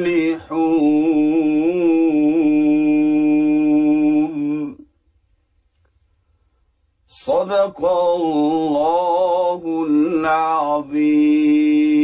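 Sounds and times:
man chanting melodically: 7.1 - 12.0.

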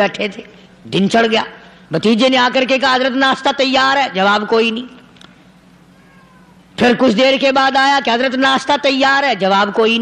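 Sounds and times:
man preaching: 0.0 - 5.0, 6.8 - 10.0
faint low hum: 0.0 - 10.0.

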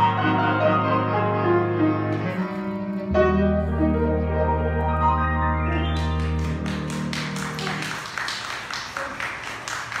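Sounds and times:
audience applauding: 5.8 - 10.0.

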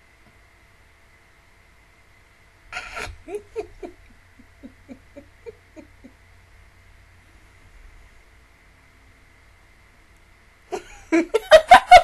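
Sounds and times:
woman giggling: 2.8 - 6.2, 10.7 - 12.0.

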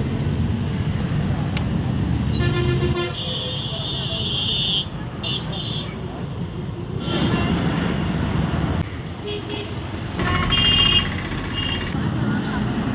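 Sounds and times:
street traffic engines: 0.0 - 12.9.

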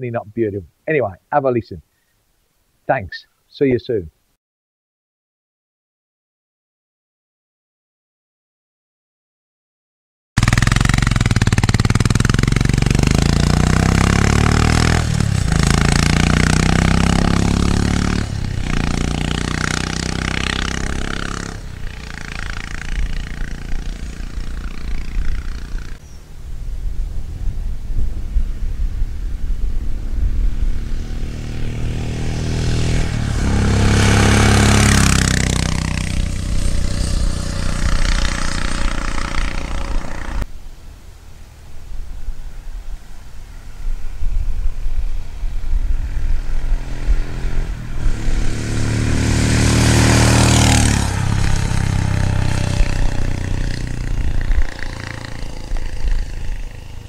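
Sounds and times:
motorcycle engine accelerating: 10.4 - 26.2, 29.5 - 40.5, 45.7 - 57.0.

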